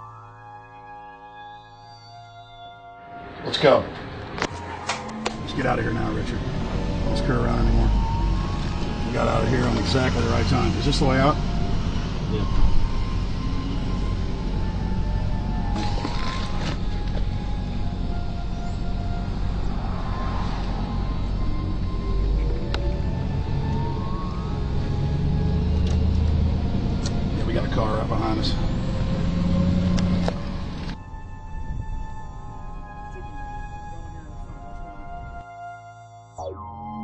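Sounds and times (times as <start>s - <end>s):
background music: 0.0s - 37.0s.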